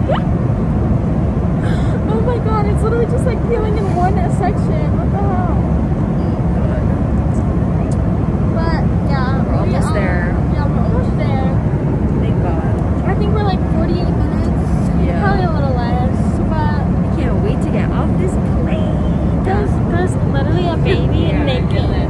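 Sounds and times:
airliner cabin rumble: 0.0s - 22.0s
faint voices: 1.6s - 22.0s.

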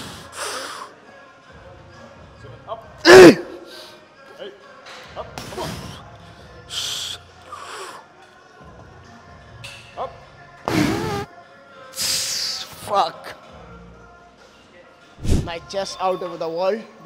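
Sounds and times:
background music: 0.0s - 17.0s
man grunting: 3.0s - 3.6s.

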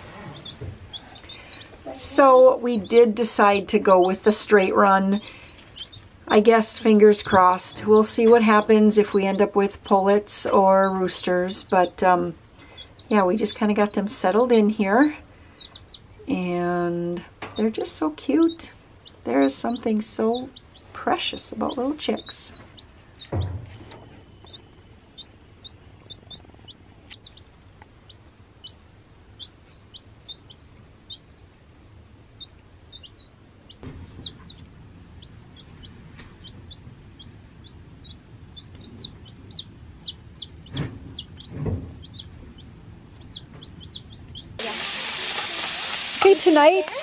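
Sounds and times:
chicks peeping: 0.0s - 47.0s
food sizzling on a griddle: 44.6s - 47.0s.

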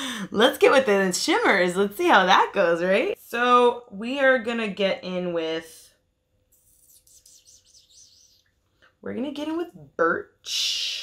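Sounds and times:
faint bird chirping: 6.6s - 8.6s.

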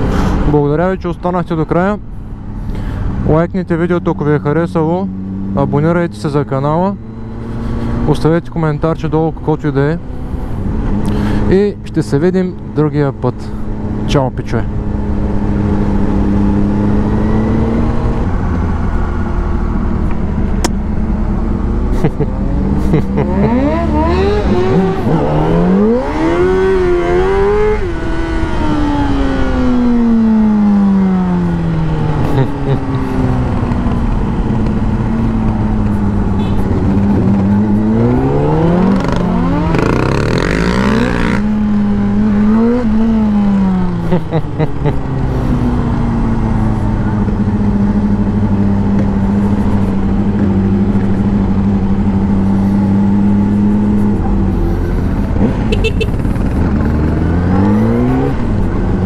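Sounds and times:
motorcycle engine revving: 14.7s - 59.0s.

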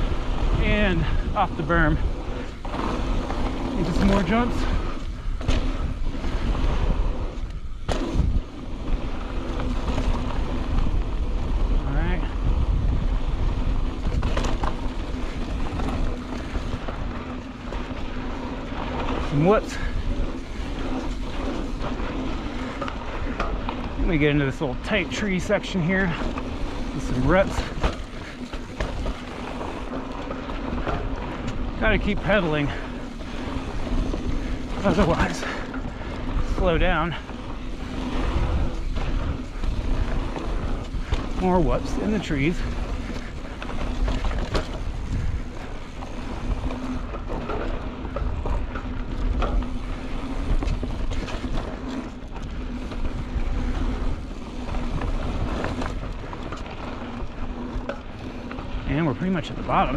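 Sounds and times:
bike rattling: 0.0s - 59.9s
bike tyres rolling on dirt: 0.0s - 59.9s
wind rushing over microphone: 0.0s - 59.9s.

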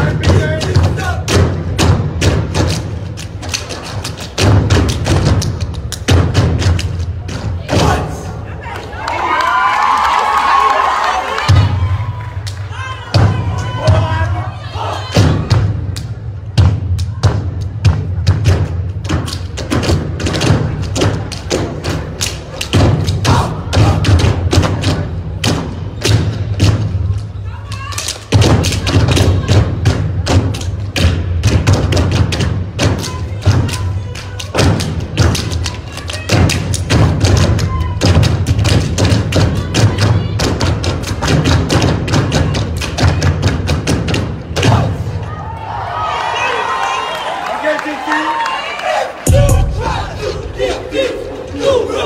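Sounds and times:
stomps and hand claps: 0.2s - 8.1s, 15.2s - 45.0s
backing track with heavy bass: 49.3s - 50.2s.

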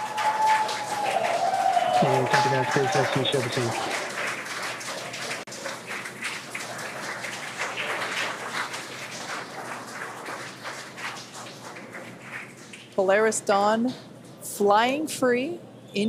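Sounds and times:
crowd applauding: 0.0s - 11.9s.

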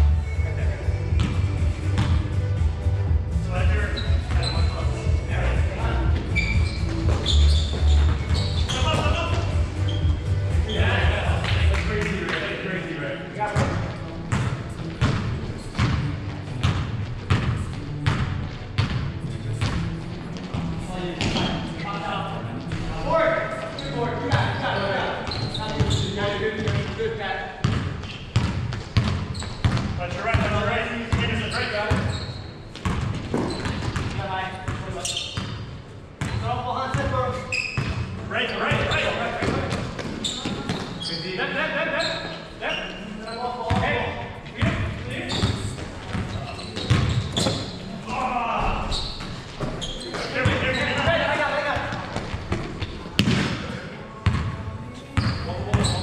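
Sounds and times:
players calling out in a gym: 3.3s - 13.9s, 19.0s - 56.0s.

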